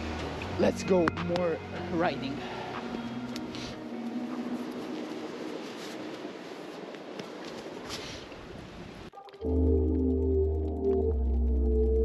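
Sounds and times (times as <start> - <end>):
faint music: 0.0 - 6.9
outdoor hiss: 2.4 - 9.1
music with held chords and deep bass: 9.4 - 12.0.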